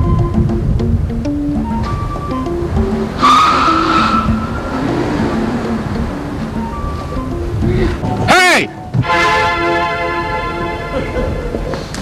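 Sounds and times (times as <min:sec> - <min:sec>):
background music: 0:00.0 - 0:12.0
car tyres squealing: 0:01.5 - 0:10.8.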